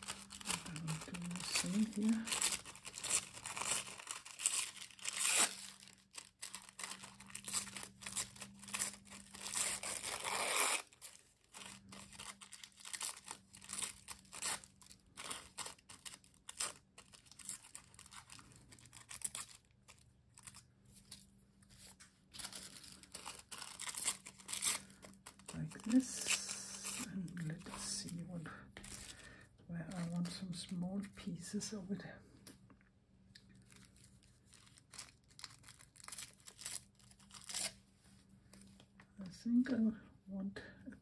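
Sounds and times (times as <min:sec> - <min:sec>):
paper tearing by hand: 0:00.0 - 0:11.2
paper crinkling rustles: 0:00.0 - 0:31.3, 0:33.5 - 0:39.0
faint steady hum: 0:00.0 - 0:41.0.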